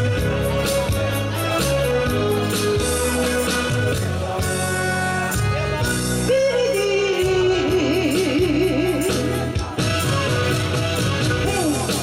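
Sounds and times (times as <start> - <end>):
backing track music: 0.0 - 12.0.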